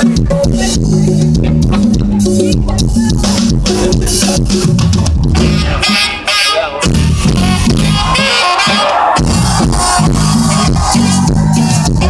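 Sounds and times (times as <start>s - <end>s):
live band music over loudspeakers: 0.0s - 12.0s.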